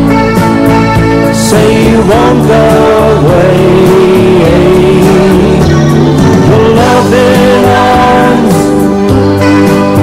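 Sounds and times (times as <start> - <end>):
bass: 0.0 - 10.0
bending lead melody: 0.0 - 10.0
drums: 0.0 - 10.0.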